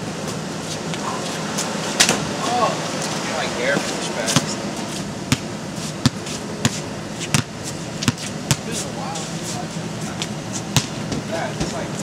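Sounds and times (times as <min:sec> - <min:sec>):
basketballs bouncing: 0:05.3 - 0:08.7, 0:10.7 - 0:11.8.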